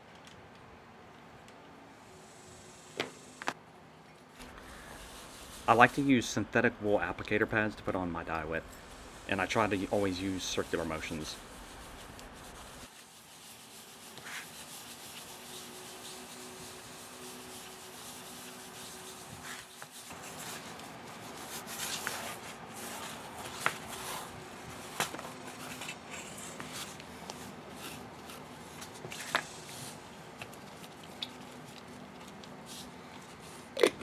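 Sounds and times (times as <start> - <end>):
pad rubbing on leather: 4.4 - 6.1, 8.4 - 33.6.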